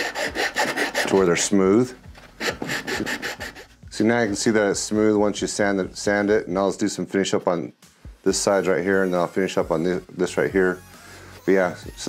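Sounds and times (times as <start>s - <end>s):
sanding stick scraping plastic: 0.0s - 1.5s, 2.4s - 4.5s.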